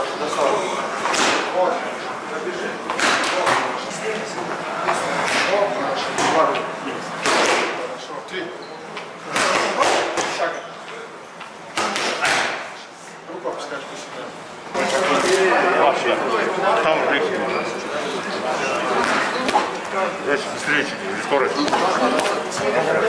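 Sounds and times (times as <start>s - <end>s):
voices in a large hall: 0.0s - 23.0s.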